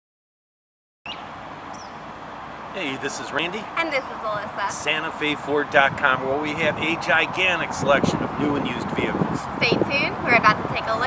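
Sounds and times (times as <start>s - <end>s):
outdoor background noise: 1.1s - 11.0s.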